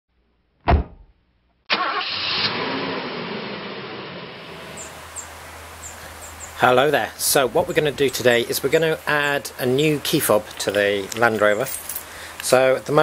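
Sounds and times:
sharp thump: 0:00.6 - 0:01.2
car engine starting: 0:01.7 - 0:05.3
high bird chirps: 0:04.6 - 0:06.7.

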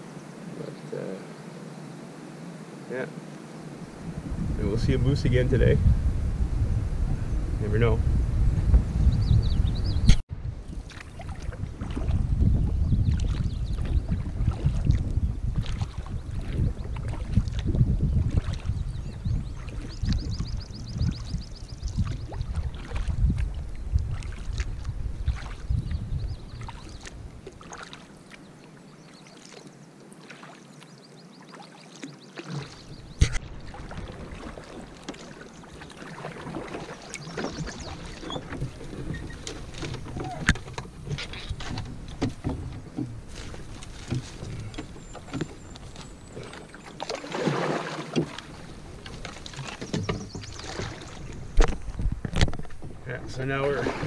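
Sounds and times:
wind rumble on microphone: 0:03.1 - 0:27.7, 0:32.7 - 0:35.0, 0:36.4 - 0:46.7, 0:48.2 - 0:54.0
water against canoe hull: 0:03.1 - 0:54.0
paddle strokes: 0:10.1 - 0:25.8, 0:26.5 - 0:54.0.

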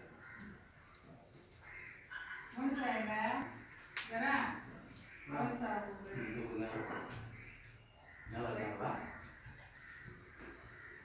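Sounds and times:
crow cawing: 0:01.6 - 0:11.0.

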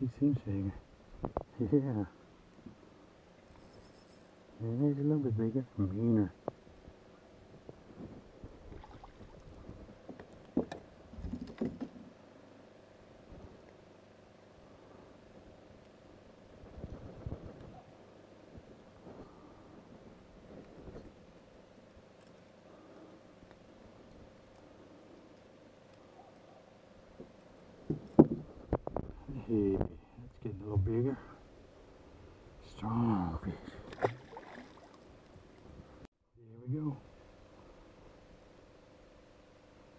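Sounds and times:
faint steady boat hum: 0:00.0 - 0:39.9.

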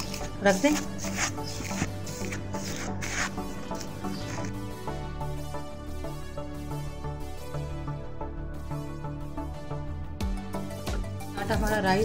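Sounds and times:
cling film crinkling: 0:00.0 - 0:04.6
background music: 0:00.0 - 0:12.0.

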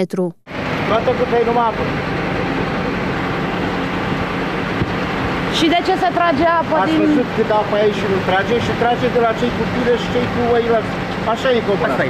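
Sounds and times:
vehicle engine running: 0:00.5 - 0:12.0
person speaking: 0:05.6 - 0:07.7.

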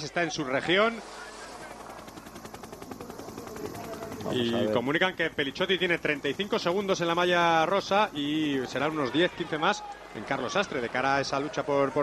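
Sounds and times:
helicopter rotor chopping: 0:00.0 - 0:12.0.

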